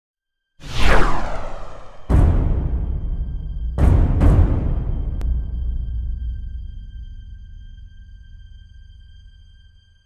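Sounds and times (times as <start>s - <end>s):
whoosh sound effect: 0.6s - 2.4s
deep rumble: 0.6s - 2.6s.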